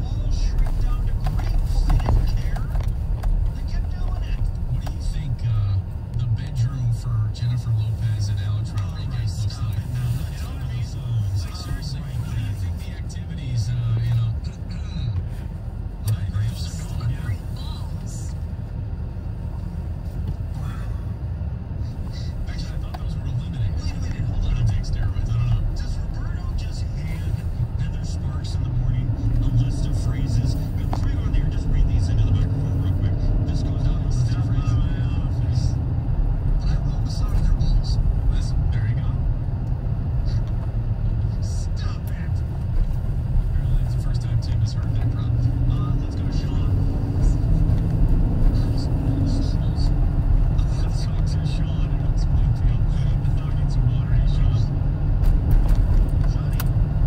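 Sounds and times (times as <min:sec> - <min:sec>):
engine and tyre rumble: 0:00.0 - 0:57.0.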